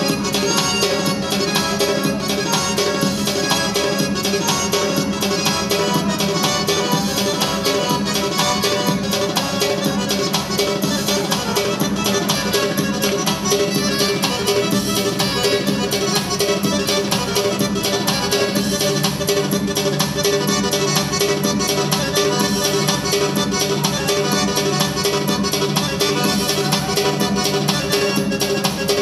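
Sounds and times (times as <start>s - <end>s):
live band dance music with keyboards: 0.0s - 29.0s.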